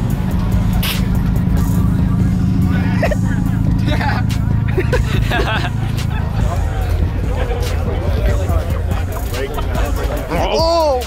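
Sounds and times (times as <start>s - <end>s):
car engine driving slowly past: 0.0s - 11.0s
crowd chatter: 0.0s - 11.0s
music: 0.0s - 11.0s.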